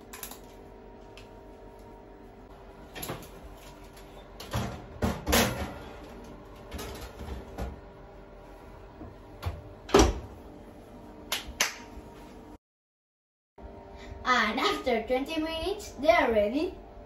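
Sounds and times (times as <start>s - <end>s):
metal tray clattering on rack: 4.4s - 6.0s
oven door banging shut: 9.9s - 10.3s
faint steady hum: 13.6s - 17.0s.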